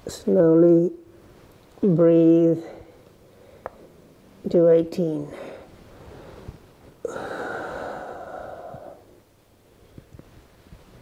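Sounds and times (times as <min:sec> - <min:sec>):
man breathing out deeply: 0:06.1 - 0:09.2.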